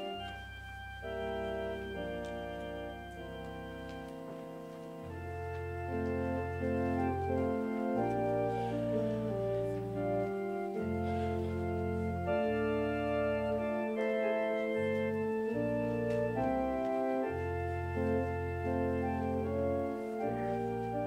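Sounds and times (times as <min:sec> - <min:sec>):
organ playing slow chords: 0:00.0 - 0:21.0.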